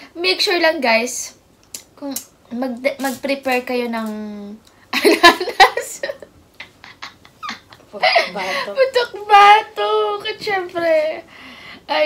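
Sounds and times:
women laughing softly: 0:04.9 - 0:08.8.

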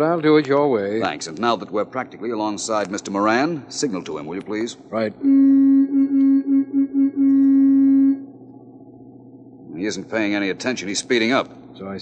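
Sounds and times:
car horn honking: 0:05.2 - 0:08.3.

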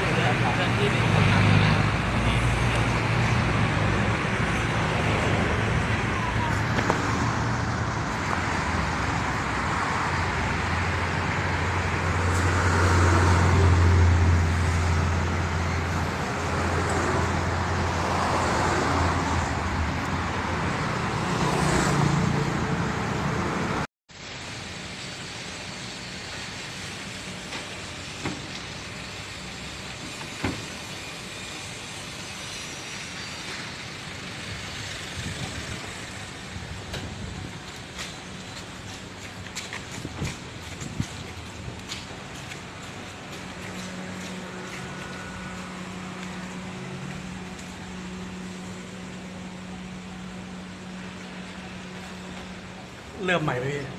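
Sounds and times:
heavy vehicle engine rumble: 0:00.0 - 0:21.2, 0:33.5 - 0:53.3
road traffic: 0:00.0 - 0:53.9.

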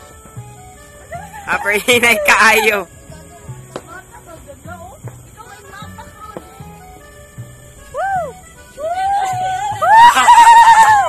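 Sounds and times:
excited shouting voices: 0:01.1 - 0:02.9, 0:08.0 - 0:11.0.

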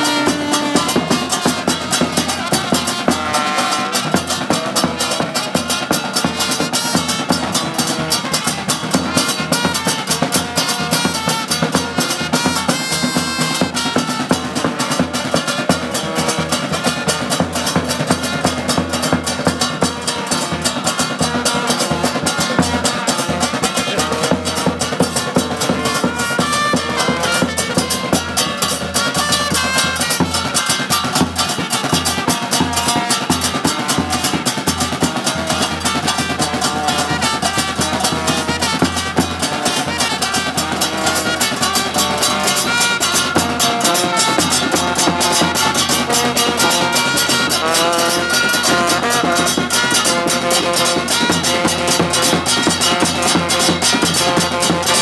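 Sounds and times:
fast drumming: 0:00.0 - 0:55.0
trumpets: 0:00.0 - 0:55.0.

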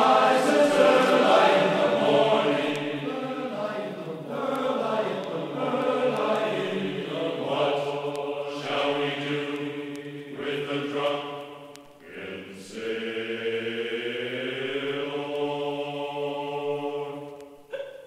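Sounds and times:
group of voices chanting: 0:00.0 - 0:11.4.

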